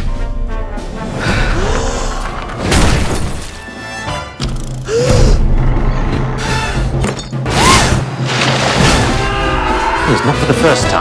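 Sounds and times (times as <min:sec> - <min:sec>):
orchestral trailer music: 0:00.0 - 0:11.0
glass and wood breaking: 0:02.6 - 0:03.6, 0:08.2 - 0:09.2.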